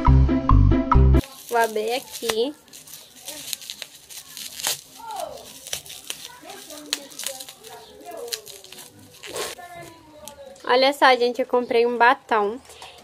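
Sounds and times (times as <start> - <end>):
packaging crinkling and tearing: 1.2 - 10.4.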